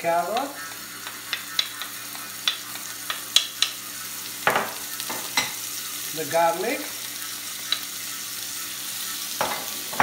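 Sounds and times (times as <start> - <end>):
faint oil sizzle: 0.0 - 10.0.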